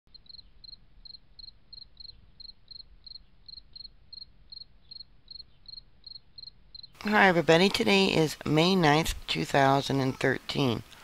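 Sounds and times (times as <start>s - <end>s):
cricket chirping: 0.1s - 7.0s.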